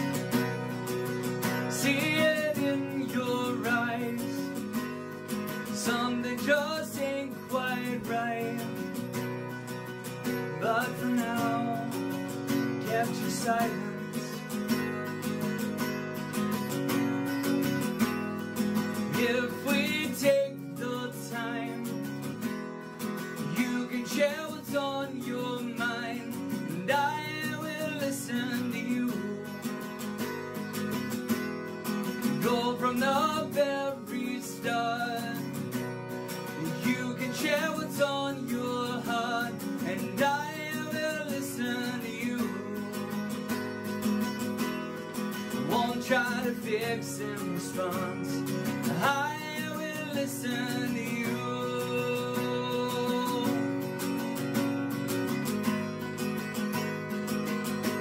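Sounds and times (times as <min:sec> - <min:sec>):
guitar playing: 0:00.0 - 0:58.0
man singing: 0:01.4 - 0:04.8, 0:05.5 - 0:09.2, 0:10.2 - 0:14.8, 0:18.9 - 0:22.1, 0:23.4 - 0:30.1, 0:32.2 - 0:35.8, 0:36.4 - 0:43.6, 0:45.4 - 0:54.3.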